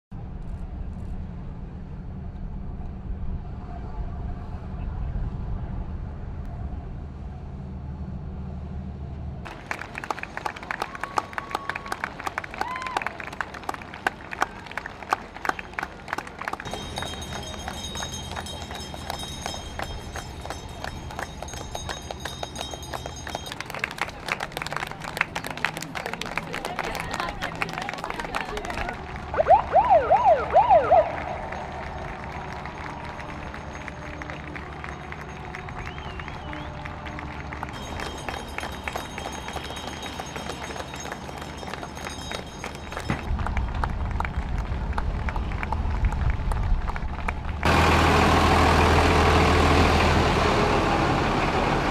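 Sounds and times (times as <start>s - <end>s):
low rumble: 0.1s - 9.5s, 28.9s - 36.8s, 43.2s - 48.0s
outdoor street noise: 0.1s - 51.9s
crowd clapping: 9.4s - 49.3s.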